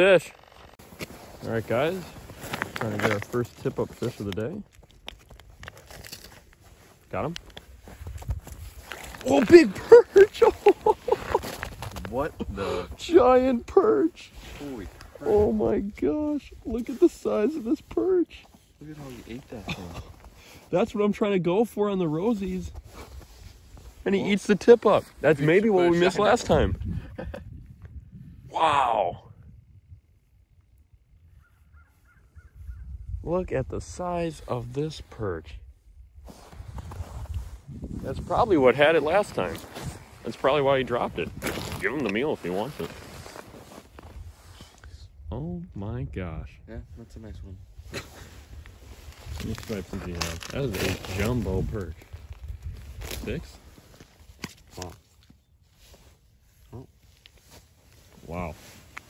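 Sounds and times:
faint clicks and rustles: 0:00.2 - 0:09.3, 0:47.9 - 0:59.0
bird calling: 0:31.3 - 0:32.9.

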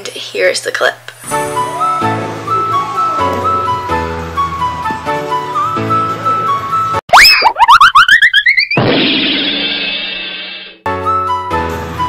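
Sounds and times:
background music: 0:01.2 - 0:07.0, 0:10.9 - 0:12.0
cartoon boing sound effect: 0:07.1 - 0:09.8.

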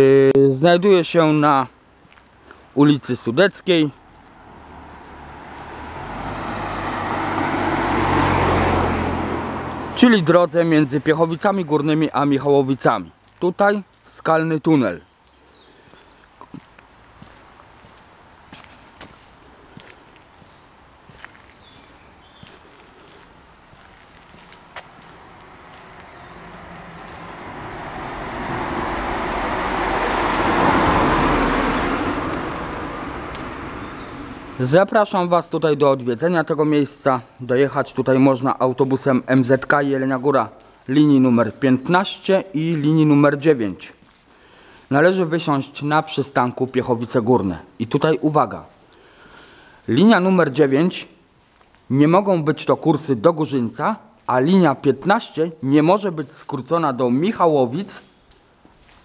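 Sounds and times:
vehicle driving past: 0:04.0 - 0:11.1, 0:25.0 - 0:34.7.

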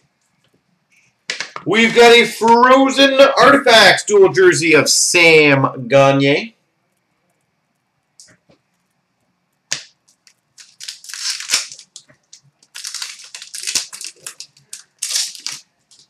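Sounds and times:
foil wrapper crinkling: 0:10.1 - 0:16.0
foil wrapper ripping: 0:10.2 - 0:16.0.

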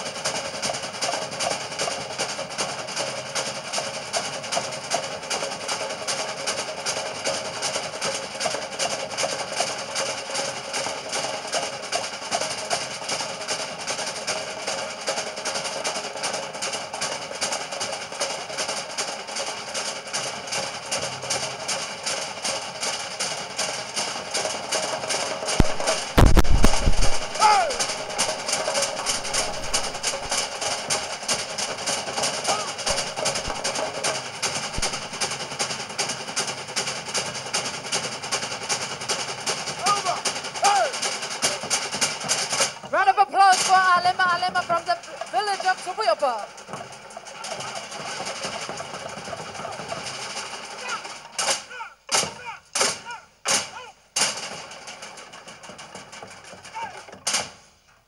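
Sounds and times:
fast woody drumming: 0:00.0 - 0:57.6.

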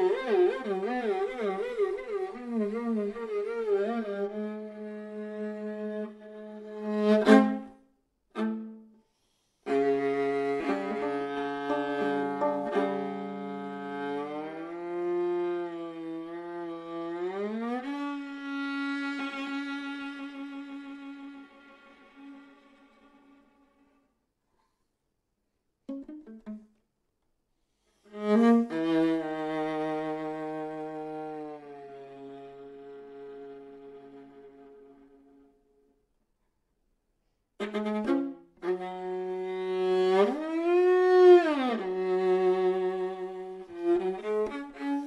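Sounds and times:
solo viola playing: 0:00.0 - 0:09.0, 0:09.6 - 0:24.0, 0:25.9 - 0:26.8, 0:28.1 - 0:35.8, 0:37.6 - 0:45.0.

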